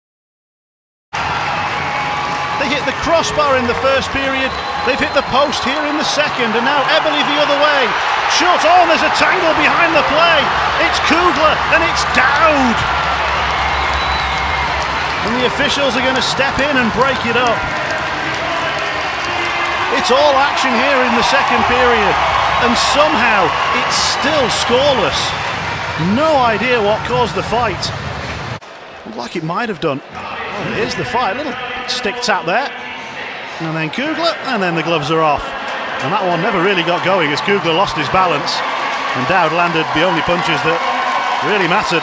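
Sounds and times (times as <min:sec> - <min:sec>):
arena crowd noise: 0:01.2 - 0:42.0.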